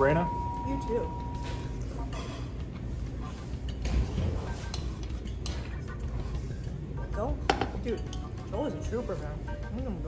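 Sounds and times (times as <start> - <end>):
restaurant background rumble: 0.0 - 10.0.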